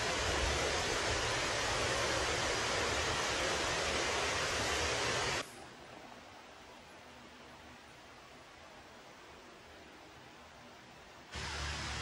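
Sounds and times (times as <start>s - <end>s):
faint hiss: 0.0s - 12.0s
steady rushing outdoor noise: 0.0s - 12.0s.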